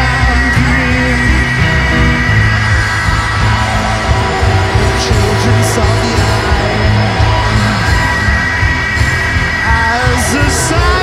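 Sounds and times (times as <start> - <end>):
electric guitar: 0.0 - 11.0
live rock band playing: 0.0 - 11.0.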